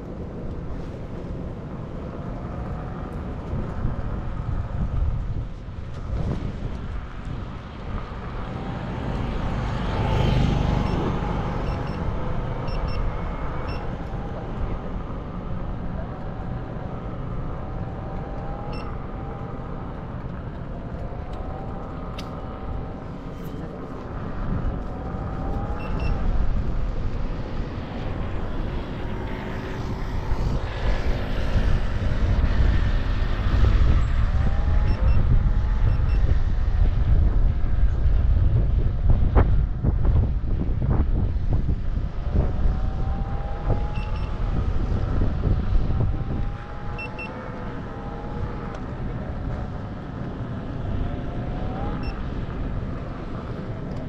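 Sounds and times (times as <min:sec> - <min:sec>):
wind on microphone: 0:00.0 - 0:54.0.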